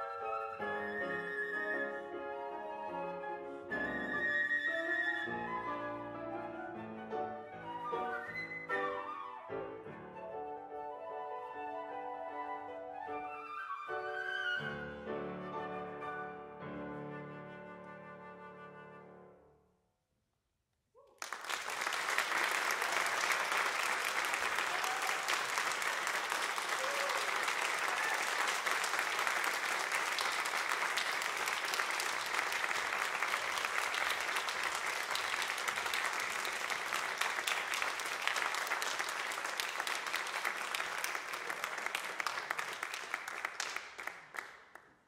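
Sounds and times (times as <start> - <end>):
audience applauding: 21.0 - 45.0.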